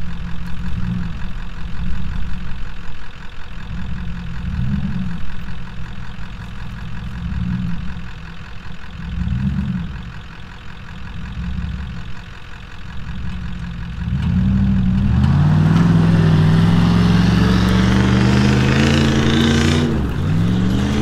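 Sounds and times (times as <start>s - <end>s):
tyres spinning on dirt: 0.1s - 21.0s
engine revving hard: 14.0s - 21.0s.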